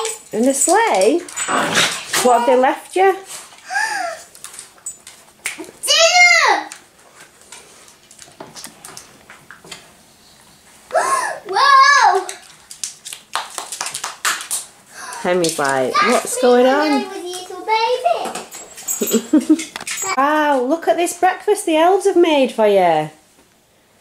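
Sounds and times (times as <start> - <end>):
child's high-pitched wordless calls: 10.9 - 12.3.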